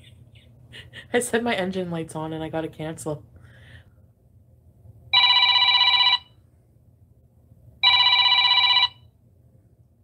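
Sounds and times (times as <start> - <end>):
telephone ringtone: 5.2 - 6.4, 7.8 - 9.1.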